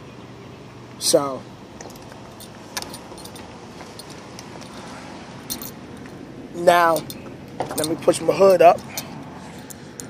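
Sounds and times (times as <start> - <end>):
steady background noise: 0.0 - 10.0
light clicks and clinks: 1.8 - 6.2, 6.8 - 10.0.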